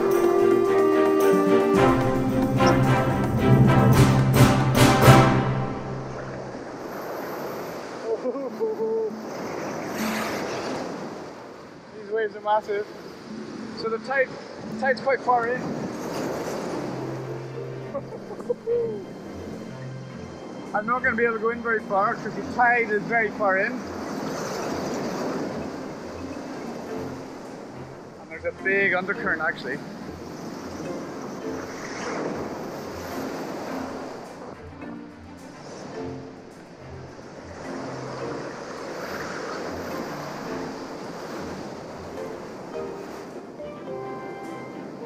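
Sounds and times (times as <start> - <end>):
surf rushing in shallows: 0.0 - 45.0
wave crashing: 0.0 - 45.0.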